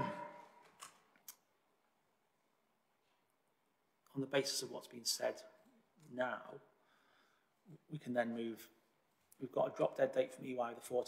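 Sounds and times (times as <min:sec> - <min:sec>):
voice: 0:04.1 - 0:06.6, 0:07.7 - 0:08.8, 0:09.4 - 0:11.0.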